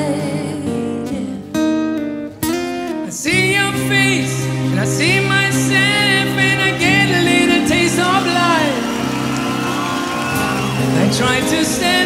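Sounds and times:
person singing: 0.0 - 1.5, 3.0 - 8.9, 10.8 - 12.0
acoustic rock band music: 0.0 - 12.0.

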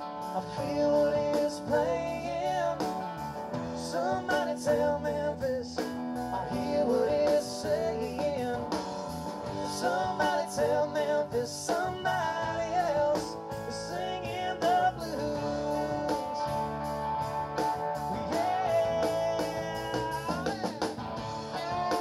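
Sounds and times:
drums: 0.0 - 22.0
electric guitar: 0.0 - 22.0.

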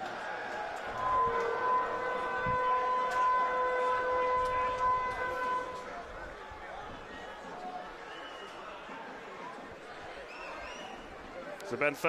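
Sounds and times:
stadium hooter long note: 0.8 - 6.4.

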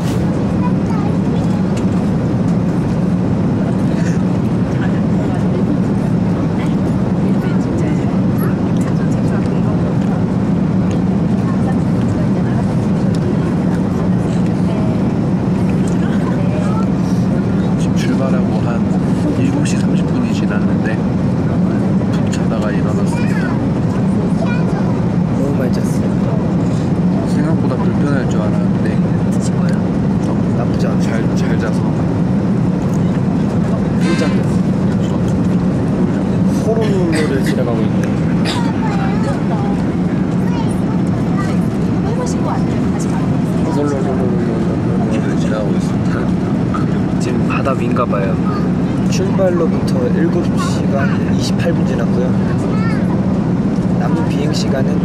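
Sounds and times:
aircraft cabin drone: 0.0 - 55.0
voices talking: 0.4 - 55.0.

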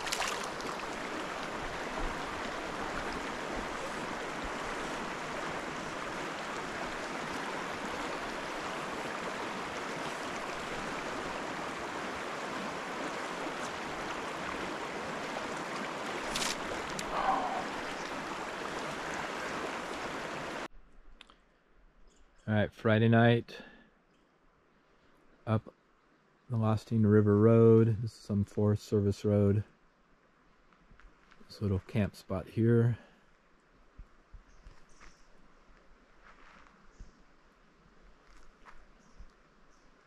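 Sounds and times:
stream rushing over rocks: 0.0 - 20.7.

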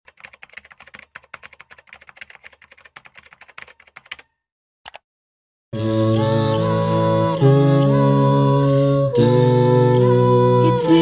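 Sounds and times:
rapid keyboard typing: 0.1 - 4.3.

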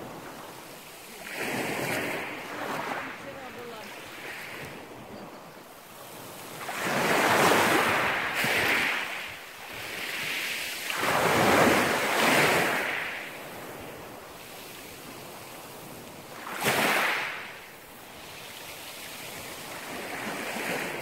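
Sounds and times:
waves washing over pebbles: 0.0 - 5.0, 5.9 - 21.0.

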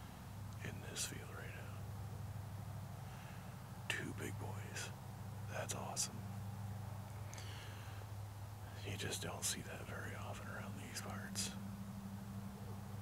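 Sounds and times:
steady low hum: 0.0 - 13.0
man whispering: 0.6 - 1.8, 3.8 - 6.2, 8.6 - 11.6.

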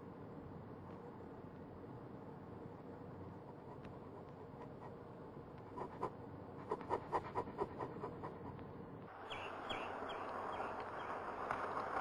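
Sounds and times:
high falling bird chirps: 9.2 - 11.2.

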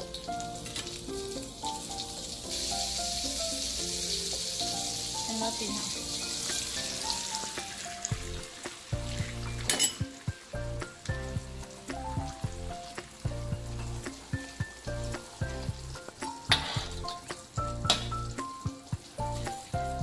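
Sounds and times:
background music: 0.0 - 20.0
dough sizzling in oil: 0.0 - 20.0
metal utensils scraping a wok: 16.5 - 17.1.

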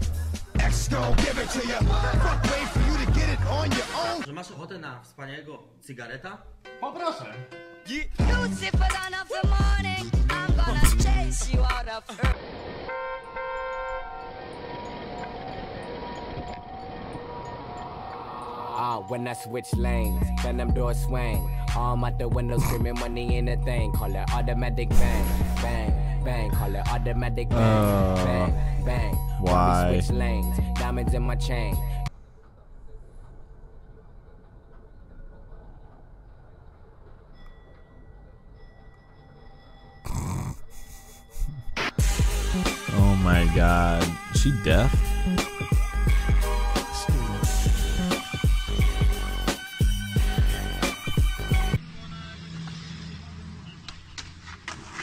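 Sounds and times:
vehicle horn: 12.8 - 14.4
street traffic: 51.8 - 55.0.

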